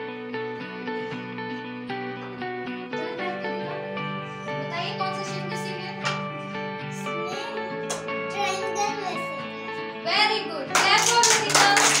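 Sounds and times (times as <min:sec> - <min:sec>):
child's voice: 0:03.0 - 0:03.8, 0:06.9 - 0:09.5
children clapping: 0:07.8 - 0:08.1, 0:10.7 - 0:12.0.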